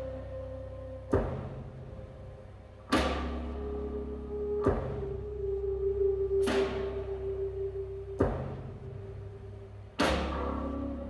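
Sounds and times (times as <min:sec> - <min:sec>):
low held bass notes: 0:00.0 - 0:11.0.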